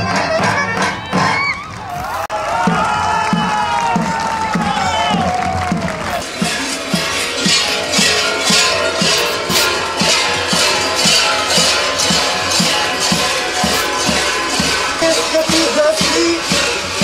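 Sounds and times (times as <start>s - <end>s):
large metal bells clanging: 5.3s - 17.0s.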